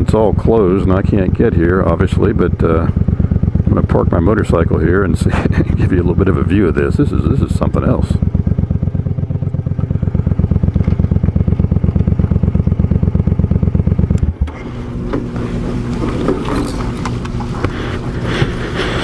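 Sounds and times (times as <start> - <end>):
motorcycle engine idling: 0.0 - 19.0.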